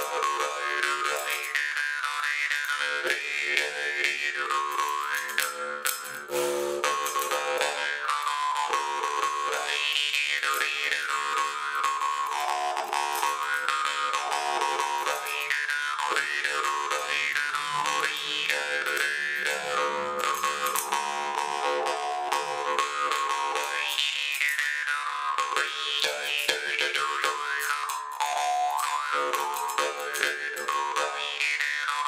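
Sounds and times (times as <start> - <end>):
jaw harp playing: 0.0 - 32.0.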